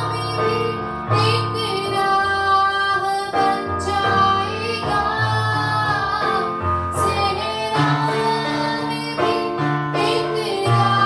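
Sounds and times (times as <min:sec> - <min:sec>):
woman singing worship song: 0:00.0 - 0:11.0.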